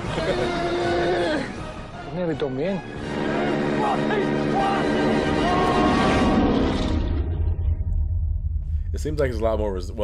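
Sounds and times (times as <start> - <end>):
soundtrack music with voice: 0.0 - 7.8
steady low rumble: 6.5 - 10.0.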